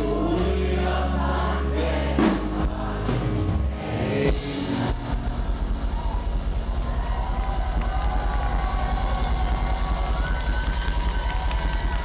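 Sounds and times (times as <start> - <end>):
live rock band instrumental: 0.0 - 11.6
pulsing low bass: 2.4 - 10.5.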